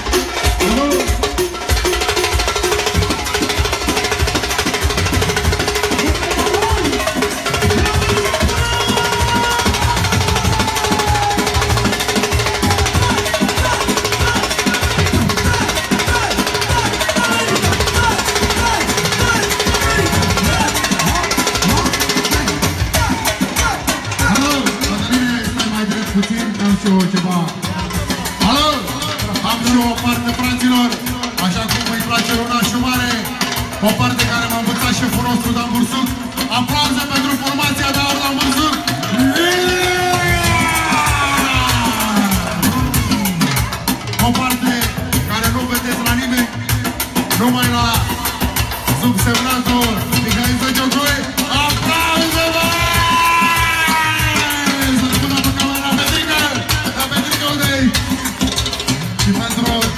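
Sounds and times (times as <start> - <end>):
crowd voices: 0.0 - 59.9
rapid drumming: 0.0 - 59.9.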